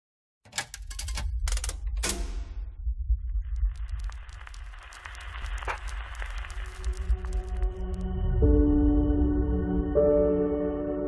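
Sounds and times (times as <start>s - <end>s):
sharp clicks and knocks: 0.5s - 2.6s
deep low rumble: 1.3s - 10.0s
steady crackle: 2.6s - 8.5s.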